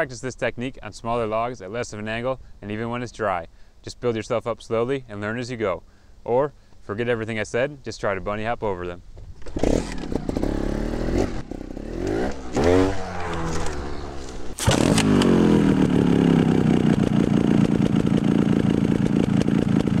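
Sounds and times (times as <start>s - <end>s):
motorcycle engine revving: 9.4s - 20.0s.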